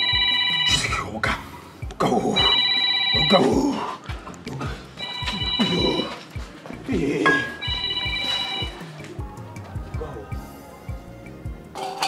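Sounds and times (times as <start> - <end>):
phone ringtone: 0.0 - 1.0, 2.3 - 3.9, 5.0 - 6.4, 7.2 - 9.0
background music with low beat: 0.0 - 12.0.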